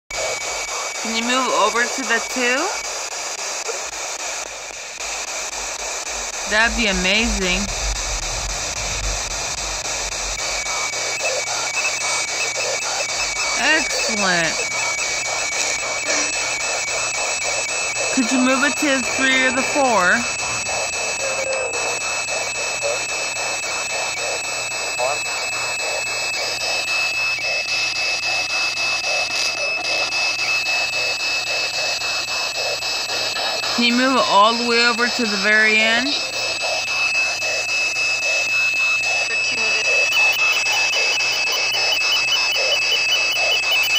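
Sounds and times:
radio static: 0.1 - 43.9
snatches of broadcast voices: 0.2 - 43.9
thin high tone: 6.4 - 22.6.

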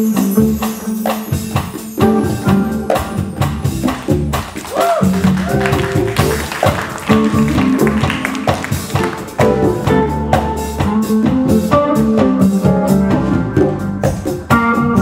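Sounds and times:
jazz fusion band playing: 0.0 - 15.0
guitar bending notes: 1.9 - 15.0.

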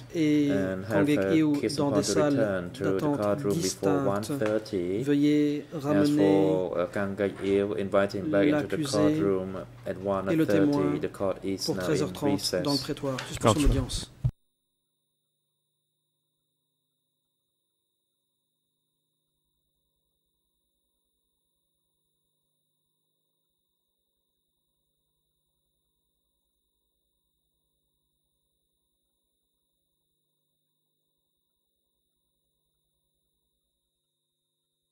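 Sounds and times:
very faint steady tones: 14.5 - 34.9.

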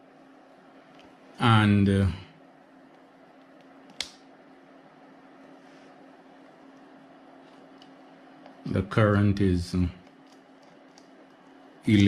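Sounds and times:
power supply humming: 0.0 - 12.0
switch click: 3.6 - 4.2.

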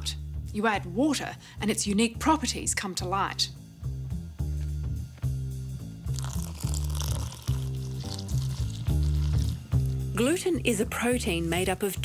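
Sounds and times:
music with rhythmic bass line: 1.8 - 12.0
water pouring into glass bowl: 6.1 - 10.0.

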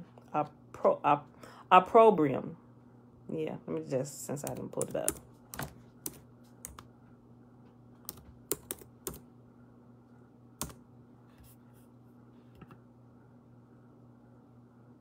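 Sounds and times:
faint low steady hum: 0.0 - 15.0
computer keyboard typing: 4.4 - 6.9, 8.0 - 9.2, 10.6 - 10.8.

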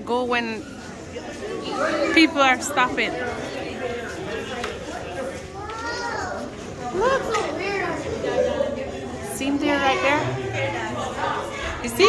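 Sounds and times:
visitors chattering: 0.0 - 12.0.

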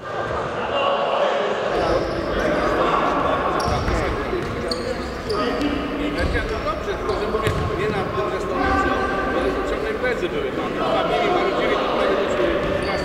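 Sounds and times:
echoing indistinct voices: 0.0 - 13.0.

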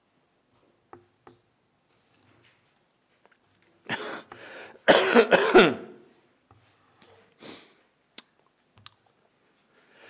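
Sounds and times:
man coughing: 3.9 - 6.1.

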